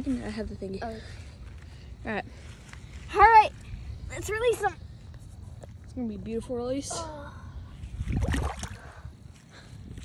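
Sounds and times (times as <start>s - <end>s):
water splashing and sloshing: 7.9s - 9.2s.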